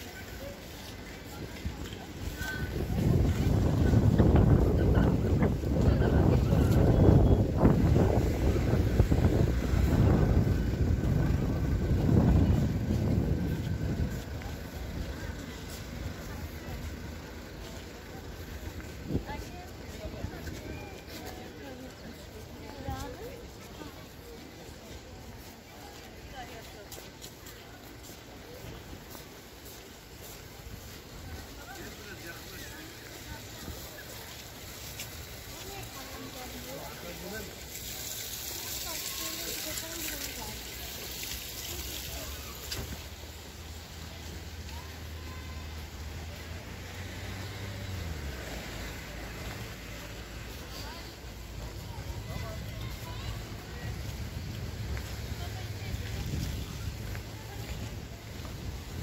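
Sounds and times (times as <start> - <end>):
indistinct voices of people: 0.0 - 59.0.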